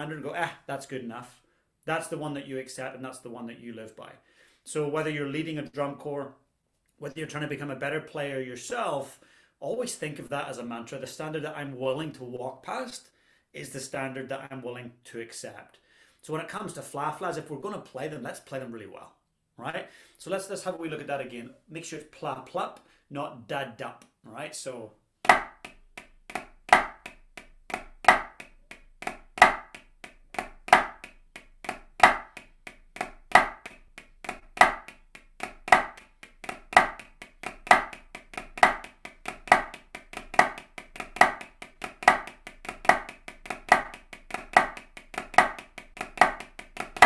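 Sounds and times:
drumsticks on practice pad: 0:25.3 - 0:47.0.

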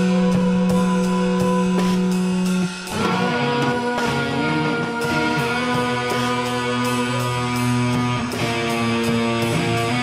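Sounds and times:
drum and cymbal hits: 0:00.0 - 0:10.0
rock guitar chord ringing: 0:00.0 - 0:10.0.

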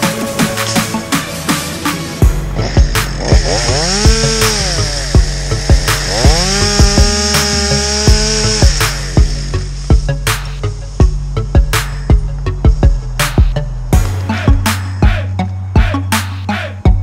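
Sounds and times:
chainsaw revving: 0:02.2 - 0:14.0
dance music with fast beat: 0:08.1 - 0:17.0.

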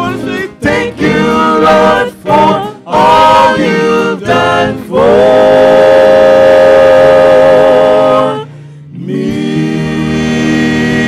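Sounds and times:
gospel group singing: 0:00.0 - 0:11.0.

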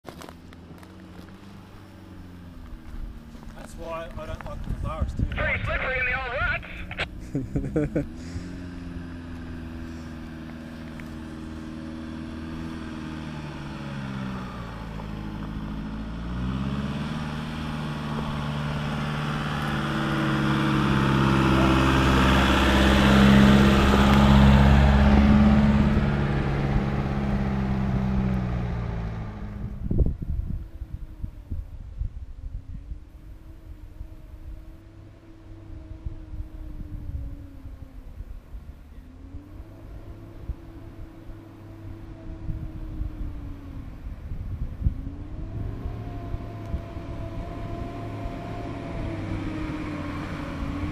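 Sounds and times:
truck engine under load: 0:06.7 - 0:29.6.

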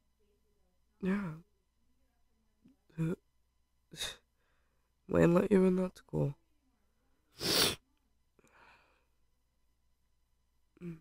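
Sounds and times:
person groaning sigh: 0:10.8 - 0:11.0.

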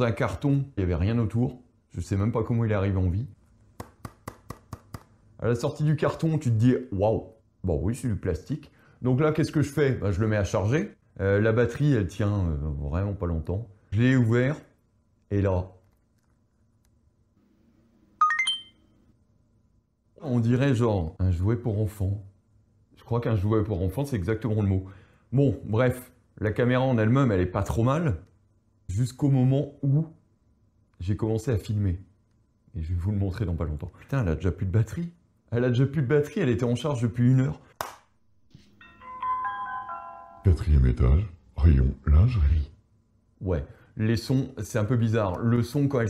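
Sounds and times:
rising electronic beeps: 0:18.2 - 0:18.7.

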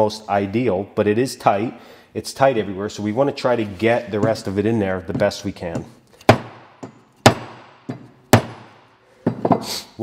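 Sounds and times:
sharp wooden knocks: 0:04.2 - 0:09.7.

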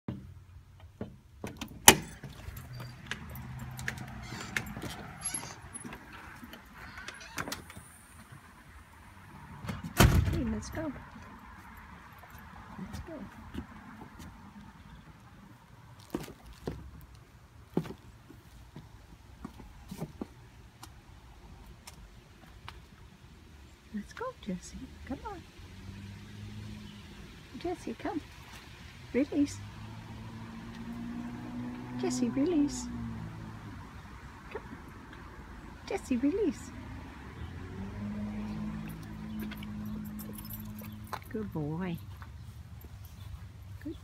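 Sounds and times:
dog leash and collar jingling: 0:02.0 - 0:06.6, 0:38.8 - 0:43.8.

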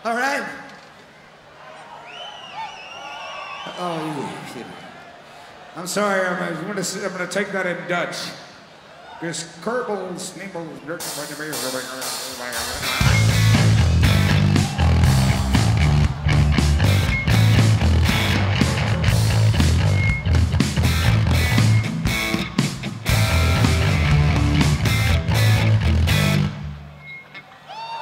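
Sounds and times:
pounding drums: 0:11.1 - 0:26.4
loud live rock band: 0:11.5 - 0:27.2
heavy bass: 0:12.6 - 0:26.9.

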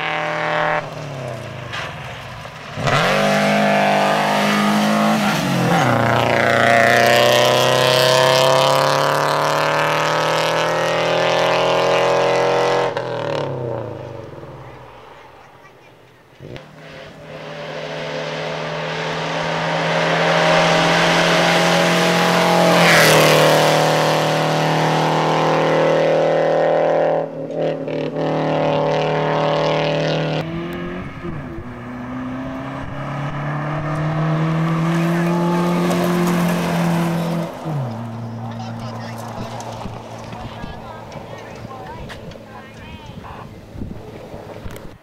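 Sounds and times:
rally car engines revving: 0:00.0 - 0:45.0.

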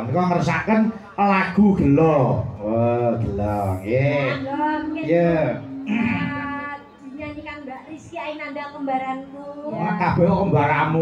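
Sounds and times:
woman speaking over pa system: 0:04.1 - 0:10.0.

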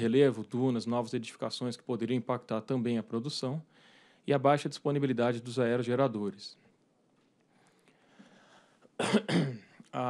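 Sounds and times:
man coughing: 0:09.0 - 0:09.8.

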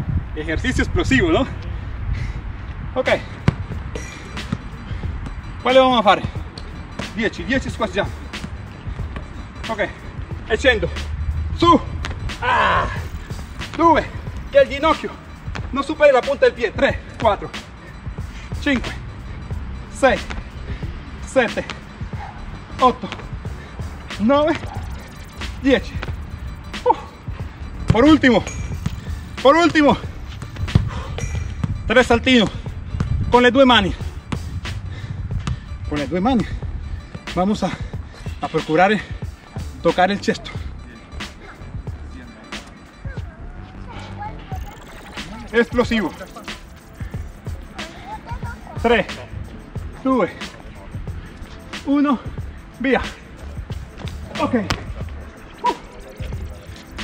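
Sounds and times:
man speaking: 0:13.7 - 0:17.6, 0:22.7 - 0:23.2, 0:24.1 - 0:26.1, 0:27.9 - 0:28.5, 0:29.4 - 0:30.2, 0:31.8 - 0:32.7, 0:38.4 - 0:42.7, 0:44.7 - 0:46.8, 0:47.6 - 0:51.0, 0:54.2 - 0:57.0.

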